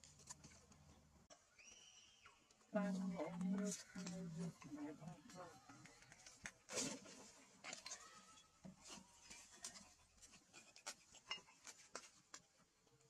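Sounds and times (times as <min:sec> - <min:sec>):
faint clicks and rustles: 0:00.0 - 0:01.4, 0:02.4 - 0:13.0.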